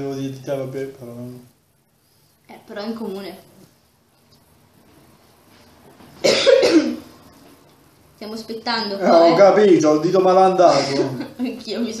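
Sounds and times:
person coughing: 6.2 - 7.1, 10.7 - 11.2.

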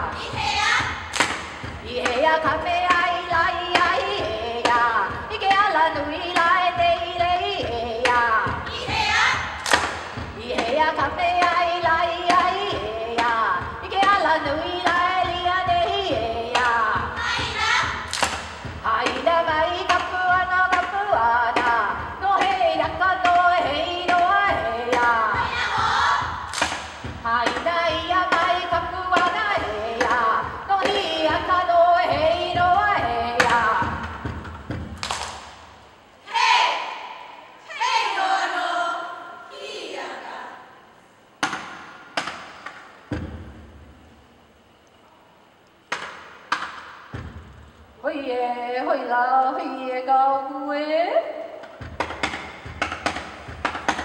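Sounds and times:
gourd drum strikes: 0.1 - 5.6, 6.3 - 35.8, 41.4 - 43.9, 45.9 - 47.7, 51.6 - 54.0.

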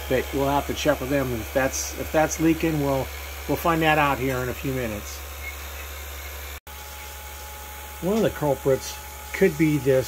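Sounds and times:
freeze dryer humming: 0.0 - 10.0
vacuum pump hissing: 0.0 - 10.0.

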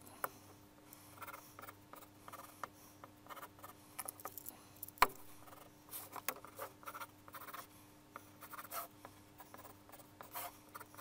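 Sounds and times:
pencil scratching on paper: 1.0 - 3.8, 5.3 - 11.0.

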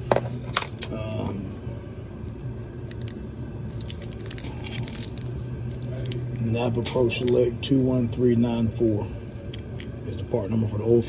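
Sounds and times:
steady low hum: 0.0 - 11.0
plastic wrap crinkling: 2.9 - 6.4.

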